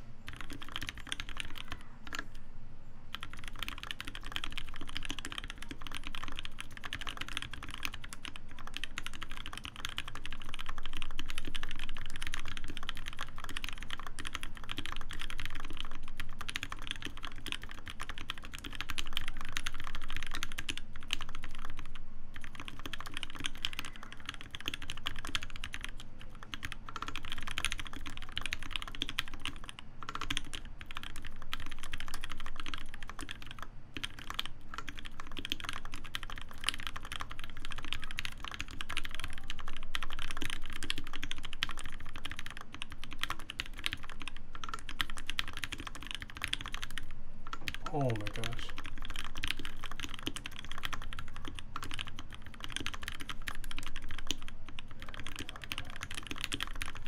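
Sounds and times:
fast typing on mechanical keyboard: 0:00.3 - 0:02.4, 0:03.1 - 0:57.0.

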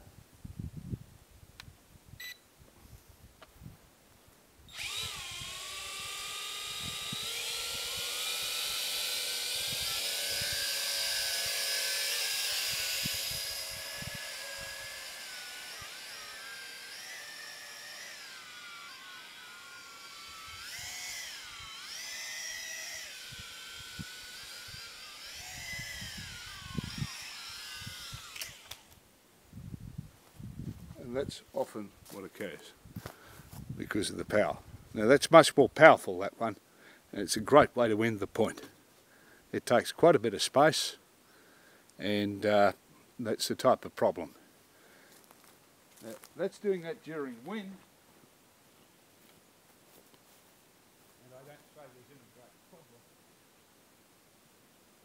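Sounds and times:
drone propellers whining: 0:04.7 - 0:29.0.

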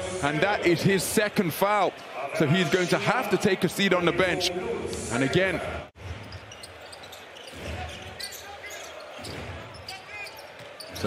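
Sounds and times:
sneaker squeaks: 0:06.0 - 0:11.0.

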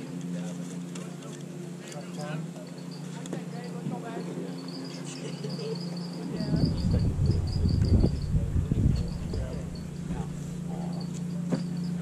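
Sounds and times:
low steady hum: 0:00.0 - 0:12.0
insects chirping: 0:02.2 - 0:12.0
loud low rumble: 0:06.5 - 0:10.6.

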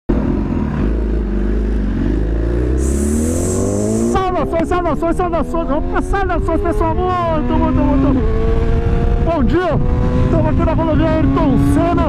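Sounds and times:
motorcycle engine accelerating: 0:00.1 - 0:12.0
high hiss: 0:02.8 - 0:04.2.

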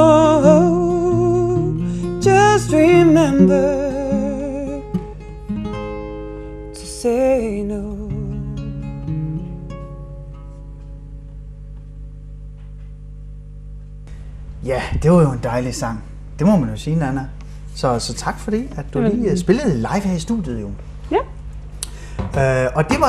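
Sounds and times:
plucked acoustic guitar: 0:00.0 - 0:11.2
woman singing: 0:19.0 - 0:19.5.

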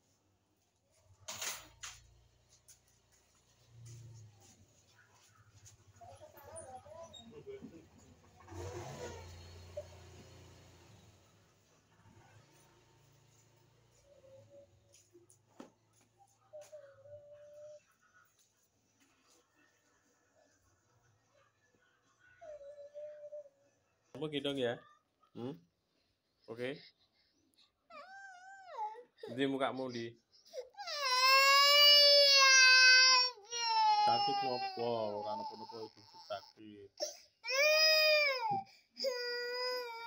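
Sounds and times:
small child's faint voice: 0:05.0 - 0:07.2, 0:15.9 - 0:18.5, 0:21.3 - 0:23.8
toddler whimpering: 0:27.9 - 0:29.1.

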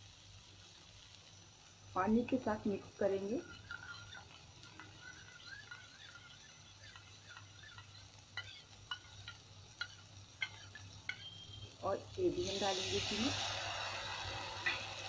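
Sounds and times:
spoon stirring in steel bowl: 0:03.1 - 0:11.6
spoon clinking against bowl: 0:03.4 - 0:11.5.

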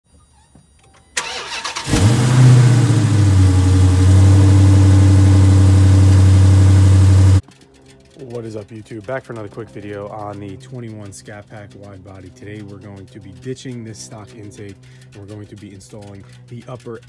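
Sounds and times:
car engine starting and idling: 0:01.2 - 0:17.0.

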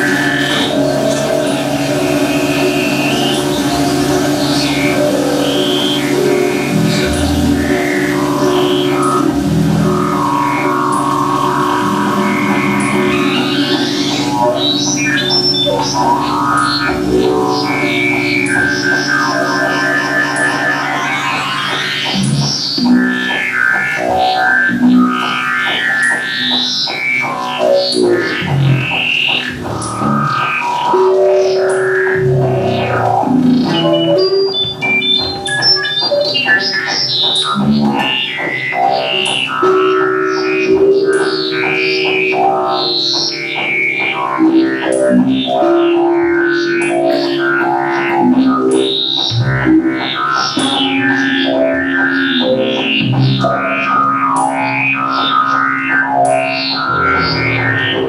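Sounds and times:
electric guitar through effects: 0:00.0 - 0:58.0
electronic drones: 0:00.0 - 0:58.0.

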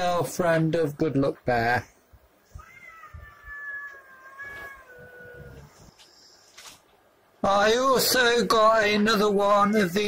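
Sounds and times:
cat meowing: 0:02.4 - 0:05.8.

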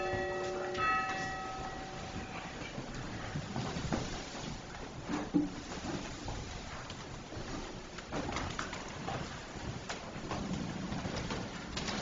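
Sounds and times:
soft shuffling: 0:00.0 - 0:12.0.

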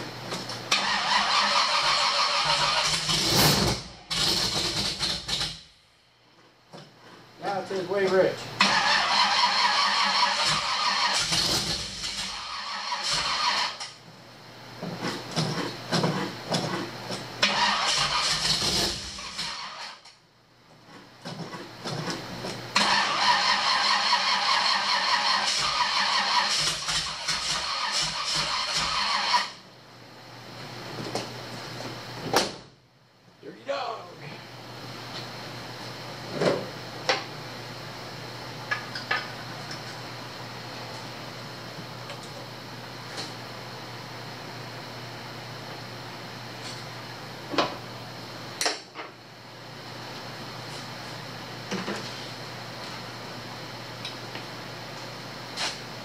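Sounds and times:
car engine cranking: 0:00.7 - 0:05.6, 0:08.6 - 0:13.9, 0:17.4 - 0:19.8, 0:22.8 - 0:29.6.

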